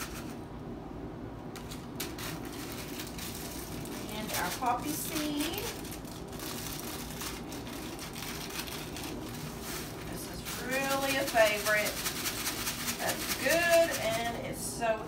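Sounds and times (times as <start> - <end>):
seeds rattling into a bowl: 1.5 - 14.4
person's voice: 4.1 - 5.8, 10.1 - 12.0, 13.0 - 15.0.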